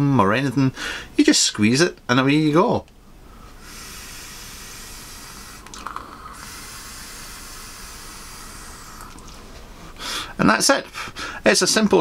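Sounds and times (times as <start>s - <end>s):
e-cigarette air hissing: 3.5s - 9.3s.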